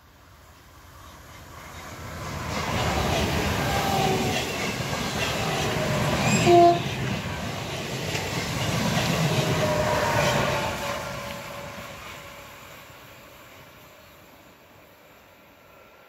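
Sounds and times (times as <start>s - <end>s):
electric train running on track: 0.0s - 16.0s.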